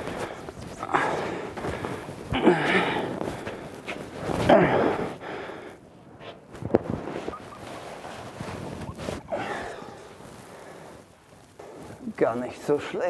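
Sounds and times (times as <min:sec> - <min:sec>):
faint scuffing movement: 0:03.1 - 0:04.5, 0:06.2 - 0:09.3.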